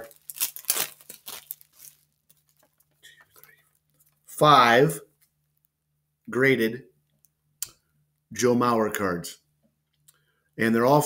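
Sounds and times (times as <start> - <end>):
wrapping crinkling and rustling: 0.0 - 4.3.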